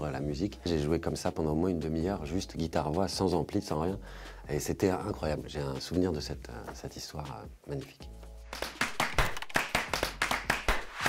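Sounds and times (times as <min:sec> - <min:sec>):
sharp clap-like percussive hits: 0:08.5 - 0:11.0.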